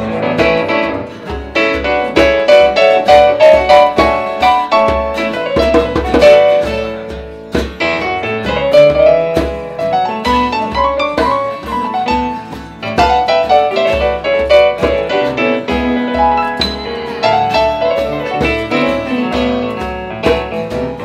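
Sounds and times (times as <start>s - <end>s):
guitars strumming: 0.0s - 21.0s
low beat: 0.0s - 21.0s
piano melody: 0.0s - 21.0s.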